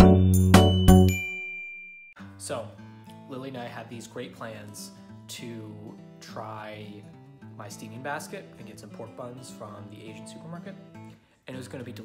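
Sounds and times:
bell-like chime: 0:00.0 - 0:02.2.

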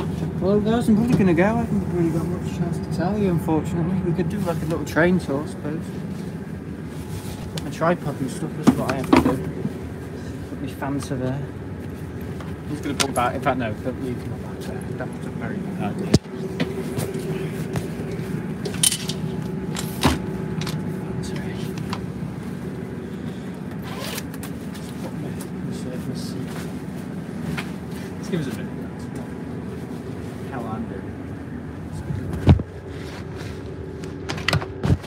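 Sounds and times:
train carriage low hum: 0:00.0 - 0:35.0.

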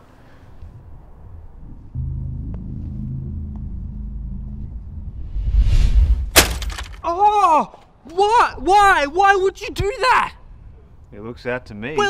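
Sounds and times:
low droning music: 0:00.6 - 0:06.7.

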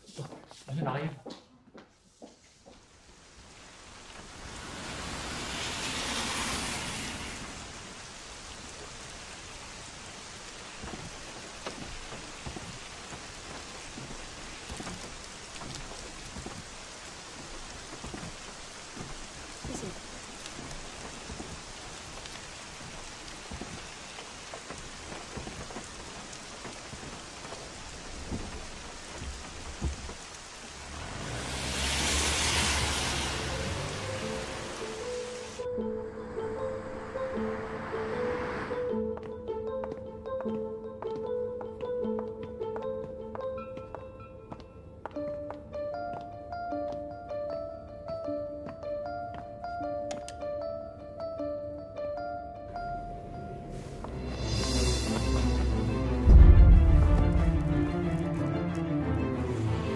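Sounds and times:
steady rain falling: 0:01.8 - 0:47.3, 0:52.6 - 0:59.9
thunder rolling: 0:54.2 - 0:58.3.

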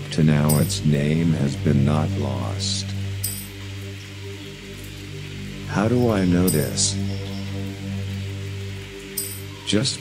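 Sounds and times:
low electronic drone: 0:00.0 - 0:09.9
faint hiss: 0:00.0 - 0:10.0.

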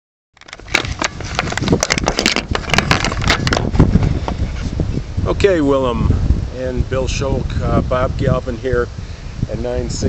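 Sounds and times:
camera handling noise: 0:00.4 - 0:04.8.

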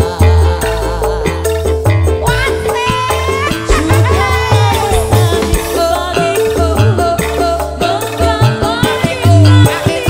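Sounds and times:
deep bass: 0:00.0 - 0:09.9
drum kit beat: 0:00.0 - 0:10.0.

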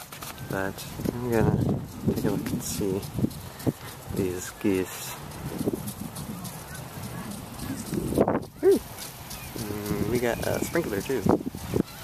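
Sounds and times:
wind noise: 0:00.0 - 0:12.0.

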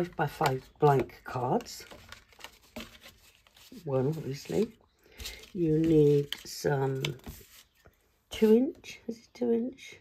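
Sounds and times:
woman speaking: 0:00.0 - 0:01.8, 0:03.8 - 0:04.8, 0:05.5 - 0:07.2, 0:08.3 - 0:10.0
card stock rustling and sliding: 0:01.6 - 0:07.8.

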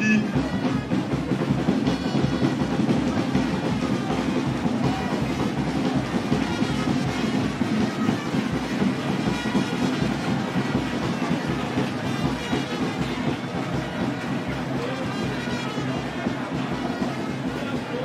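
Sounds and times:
crowd noise: 0:00.0 - 0:18.0
school band playing: 0:00.0 - 0:18.0.

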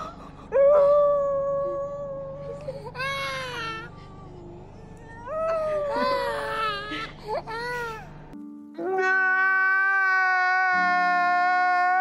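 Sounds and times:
toddler crying: 0:08.8 - 0:12.0.

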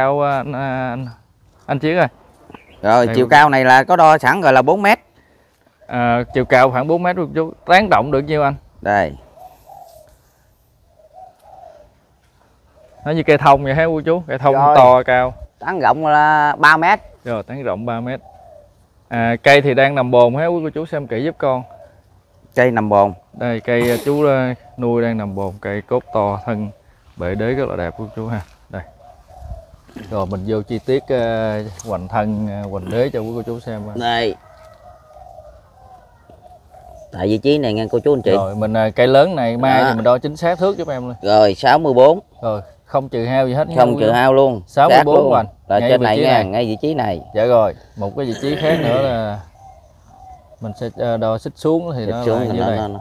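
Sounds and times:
faint birds calling: 0:00.0 - 0:53.0
dove cooing: 0:05.2 - 0:53.0.

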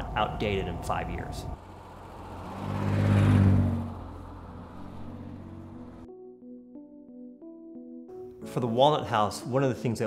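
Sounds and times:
car engine driving past: 0:01.3 - 0:06.1.

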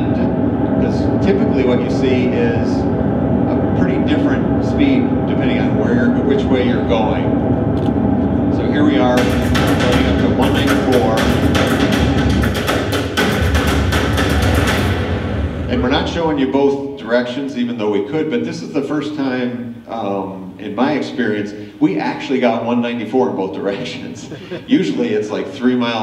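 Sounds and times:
music with heavy drum hits: 0:09.1 - 0:16.3.

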